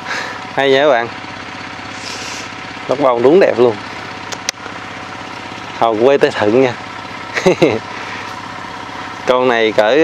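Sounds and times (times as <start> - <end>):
small engine running: 0.0 - 10.0.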